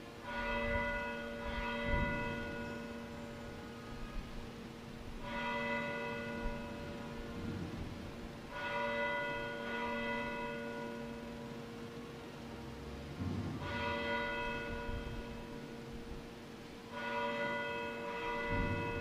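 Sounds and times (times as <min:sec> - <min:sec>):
church bell tolling: 0:00.0 - 0:12.0, 0:13.1 - 0:19.0.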